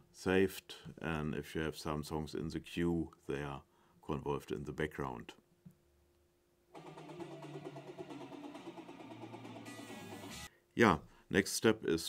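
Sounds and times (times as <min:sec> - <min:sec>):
music through loudspeakers: 0:06.8 - 0:10.5.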